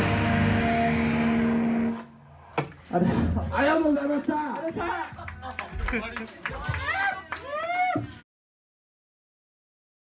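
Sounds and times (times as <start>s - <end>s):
punk band final chord: 0.0s - 2.0s.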